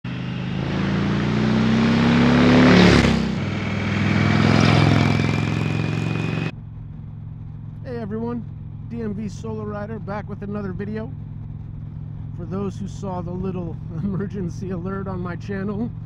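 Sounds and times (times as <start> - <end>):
motorcycle engine passing by: 0.0 - 6.5
steady riding noise: 0.0 - 16.0.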